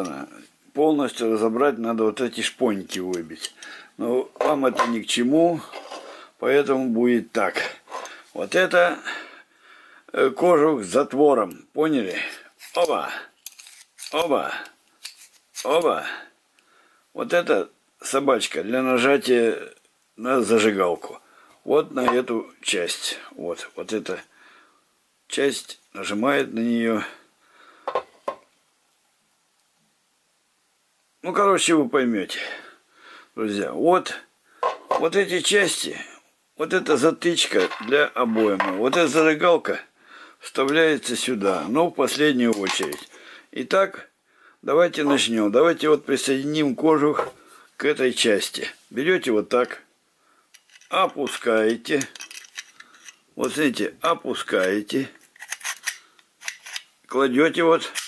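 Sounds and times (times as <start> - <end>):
light metallic clicks and scrapes: 50.5 - 53.3, 54.6 - 57.0.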